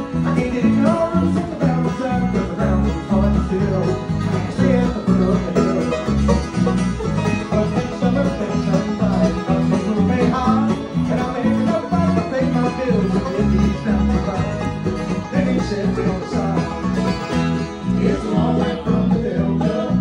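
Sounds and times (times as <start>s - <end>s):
banjo: 0.0s - 20.0s
steady bass line: 0.0s - 20.0s
strummed acoustic guitar: 0.0s - 20.0s.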